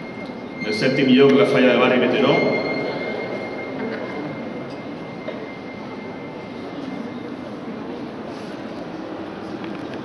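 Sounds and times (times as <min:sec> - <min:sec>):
crowded hall background noise: 0:00.0 - 0:10.0.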